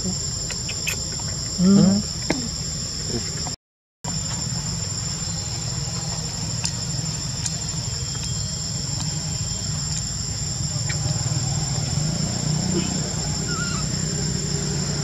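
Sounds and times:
insects chirring: 0:00.0 - 0:15.0.

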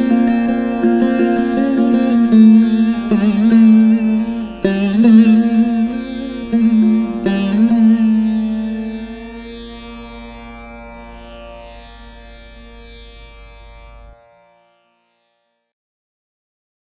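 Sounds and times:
veena plucked notes: 0:00.0 - 0:15.6.

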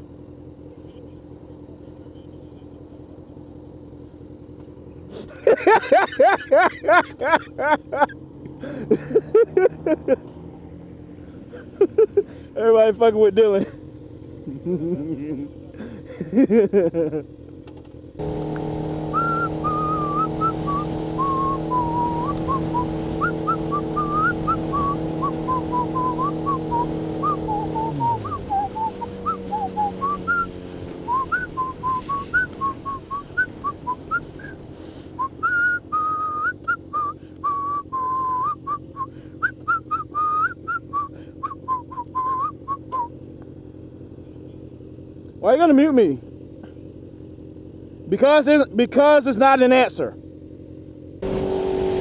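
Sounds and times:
motorcycle engine: 0:00.0 - 0:52.0
person whistling a tune: 0:19.1 - 0:30.5, 0:31.1 - 0:34.6, 0:35.2 - 0:43.1.

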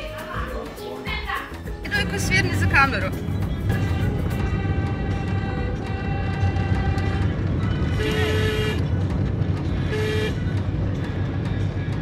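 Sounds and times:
car engine and road rumble: 0:01.8 - 0:12.0
car horn tooting: 0:03.6 - 0:09.0, 0:09.7 - 0:10.6.

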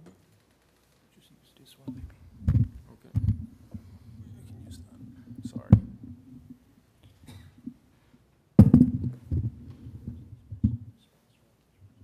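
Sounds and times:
soft whispered talk: 0:01.1 - 0:03.2, 0:03.8 - 0:05.8, 0:10.9 - 0:12.0
microphone handling noise: 0:01.9 - 0:06.6, 0:08.6 - 0:11.0
loud thump: 0:02.0 - 0:03.5, 0:05.6 - 0:06.0, 0:08.6 - 0:09.6.

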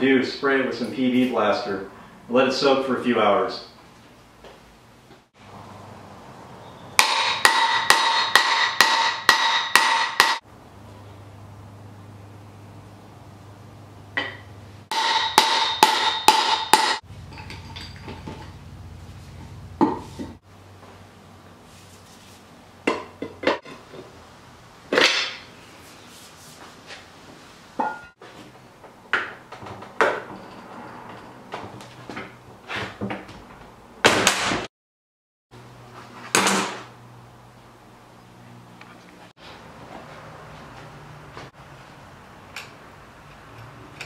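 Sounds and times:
hammer striking steel: 0:07.0 - 0:10.4, 0:14.2 - 0:18.0.

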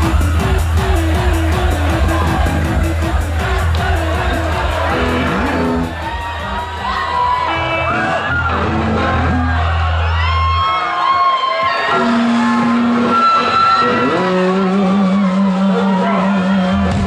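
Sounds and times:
rock band playing: 0:00.0 - 0:10.7, 0:11.6 - 0:17.0
audience shouts and whoops: 0:00.0 - 0:17.0.

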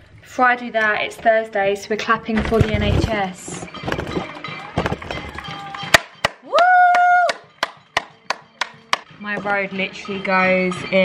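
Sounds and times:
hands clapping: 0:04.2 - 0:09.1.

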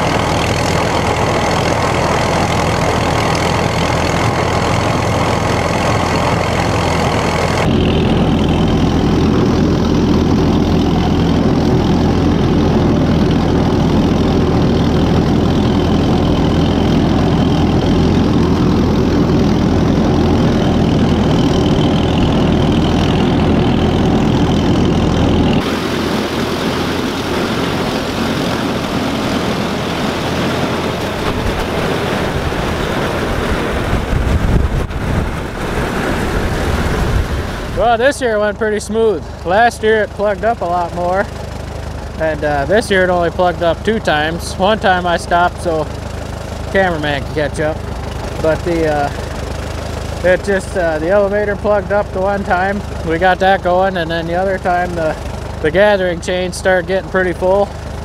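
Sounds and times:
tractor engine running under load: 0:00.0 - 0:58.0.

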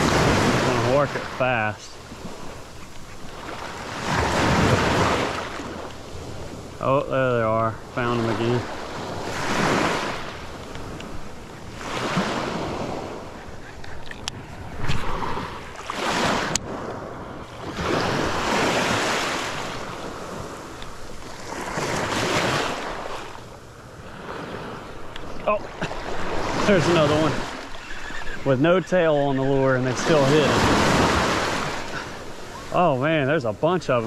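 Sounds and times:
surf washing over shallows: 0:00.0 - 0:34.0
wind on microphone: 0:09.0 - 0:19.0.

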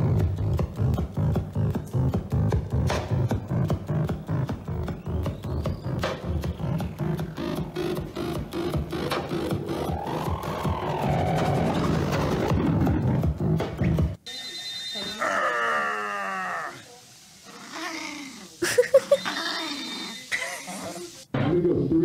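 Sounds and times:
electronic music with clicks and tones: 0:00.0 - 0:14.3.

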